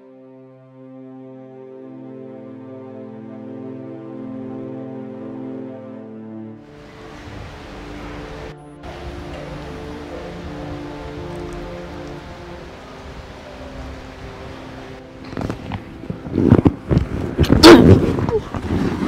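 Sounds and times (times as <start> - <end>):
soft film score: 0.0 - 19.0
scuffle with cries: 17.3 - 19.0.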